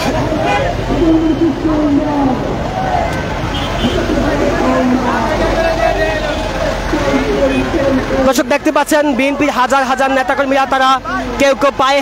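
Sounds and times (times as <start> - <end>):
men talking: 4.2 - 12.0.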